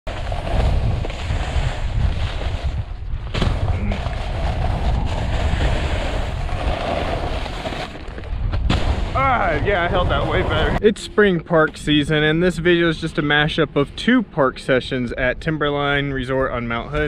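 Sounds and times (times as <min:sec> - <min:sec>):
snowboard scraping over snow: 0:00.1 - 0:08.2, 0:09.0 - 0:10.8
wind buffeting microphone: 0:00.1 - 0:17.0.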